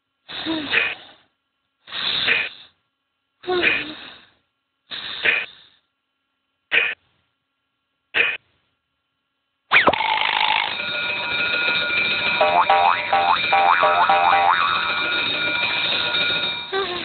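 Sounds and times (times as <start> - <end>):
cartoon alarm clock ringing: 9.9 - 17.0.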